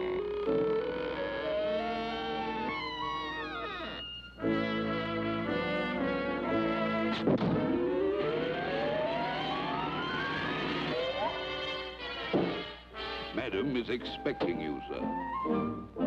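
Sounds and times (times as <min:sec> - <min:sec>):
brass playing held chords: 0:04.4 - 0:14.2
rising pitch glide: 0:06.6 - 0:11.7.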